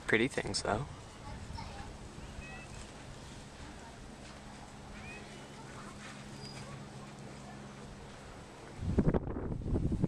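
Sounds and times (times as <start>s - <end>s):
wind buffeting microphone: 0.8s - 4.2s, 8.4s - 10.0s.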